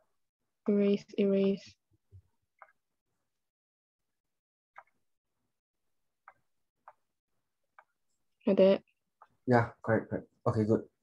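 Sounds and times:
computer mouse clicks: 4.8s - 5.0s.

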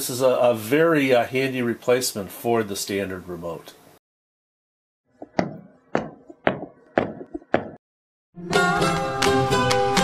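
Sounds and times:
sharp percussive knocks: 5.2s - 7.8s.

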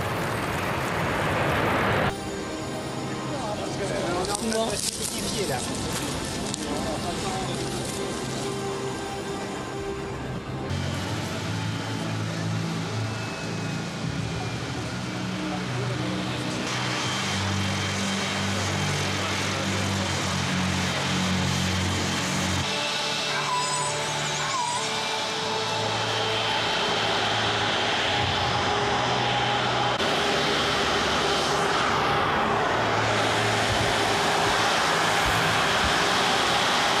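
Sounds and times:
jet engines rushing: 0.0s - 37.0s.

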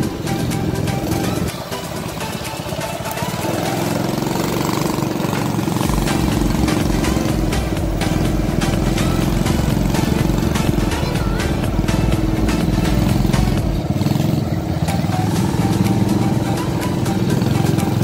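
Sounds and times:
background music: 0.0s - 18.0s
small motorbike engine running: 0.0s - 18.0s.

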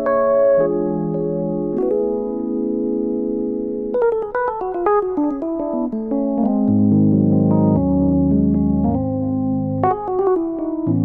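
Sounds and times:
keyboard music: 0.0s - 11.0s.

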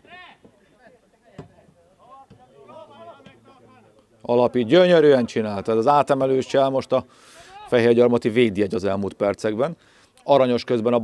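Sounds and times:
faint players calling out: 7.2s - 7.8s.

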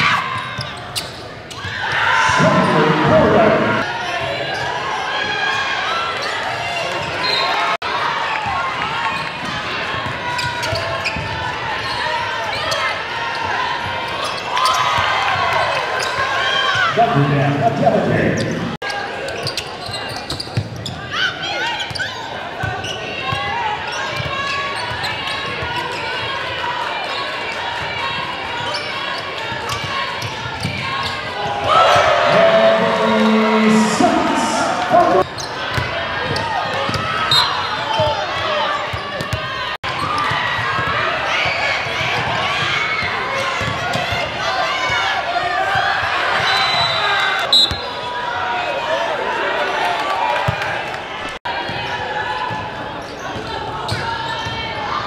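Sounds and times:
voices in a gym: 0.0s - 55.0s.

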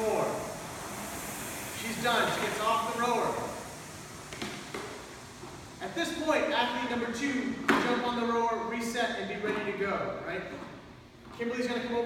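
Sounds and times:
man speaking: 1.8s - 3.6s, 5.8s - 10.6s.

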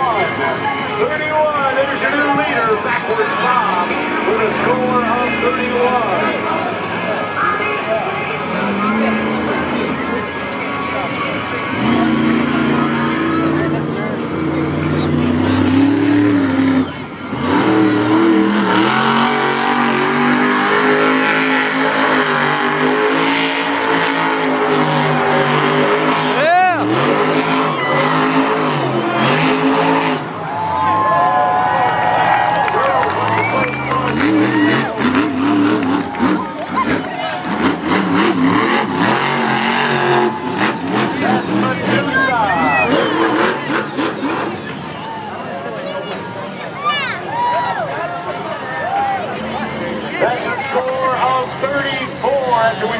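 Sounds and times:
monster truck engine revving: 0.0s - 52.9s.

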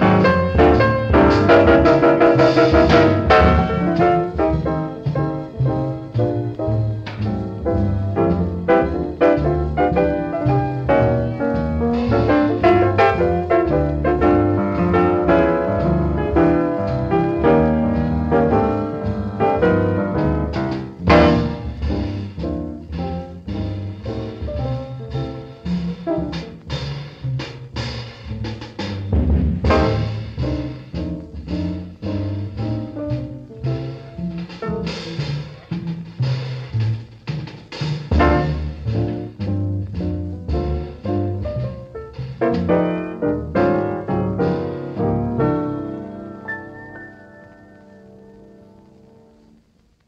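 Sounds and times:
drum kit and cymbals: 0.0s - 50.0s
piano: 0.0s - 50.0s
walking double bass: 0.0s - 50.0s.

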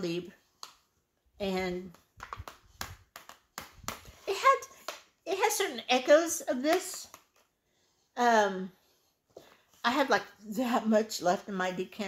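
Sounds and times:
plastic bottles tapping and clicking: 2.0s - 4.2s.

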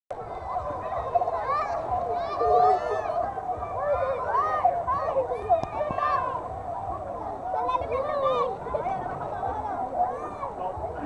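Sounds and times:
children shouting and squealing: 0.1s - 11.0s.

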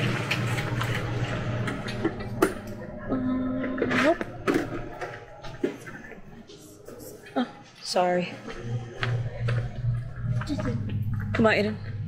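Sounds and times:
woman speaking: 7.3s - 8.7s, 10.5s - 11.9s.

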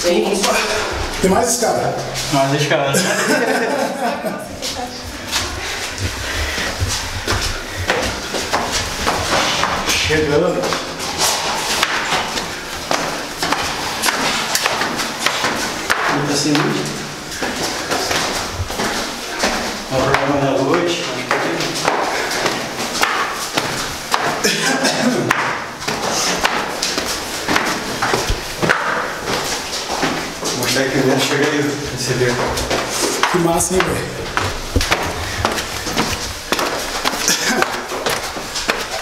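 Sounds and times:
footsteps on stairs: 0.0s - 39.0s
indistinct voices: 30.5s - 36.0s.

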